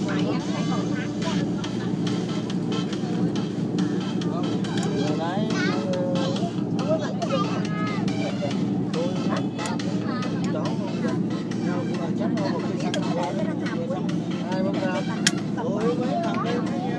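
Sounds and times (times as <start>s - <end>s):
bus engine and road noise drone: 0.0s - 16.9s
voices talking: 0.0s - 16.9s.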